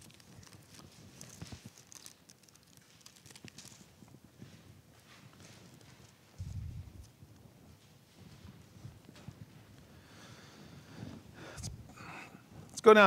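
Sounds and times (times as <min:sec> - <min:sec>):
thin pages being turned: 0:00.0 - 0:04.2.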